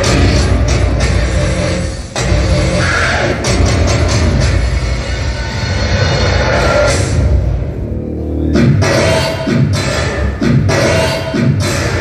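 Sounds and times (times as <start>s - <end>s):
loud dance music over sound system: 0.0s - 12.0s.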